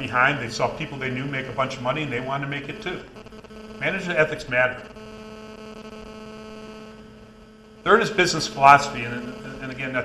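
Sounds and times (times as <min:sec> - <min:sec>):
electrical hum: 0:00.0 - 0:10.0
faint room hiss: 0:00.0 - 0:10.0.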